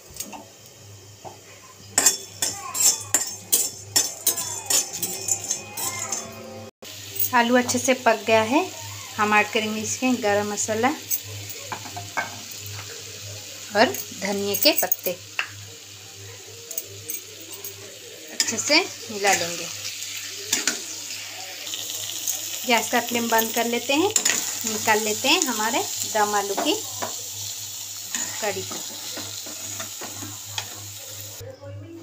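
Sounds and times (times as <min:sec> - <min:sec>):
metal spatula scraping: 0:02.0 - 0:06.6
curry simmering sizzle: 0:06.8 - 0:14.5, 0:15.1 - 0:31.4.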